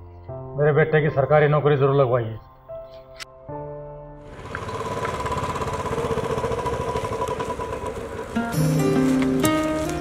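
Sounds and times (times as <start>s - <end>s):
motorcycle engine thumping: 4.3s - 10.0s.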